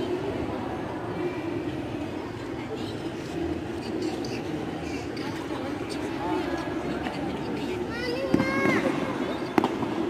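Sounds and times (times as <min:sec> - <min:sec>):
faint indistinct voices: 0:00.0 - 0:10.0
rumbling hall noise: 0:00.0 - 0:10.0.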